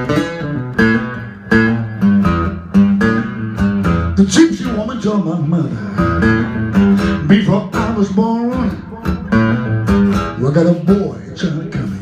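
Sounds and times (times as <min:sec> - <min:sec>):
acoustic blues guitar: 0:00.0 - 0:12.0.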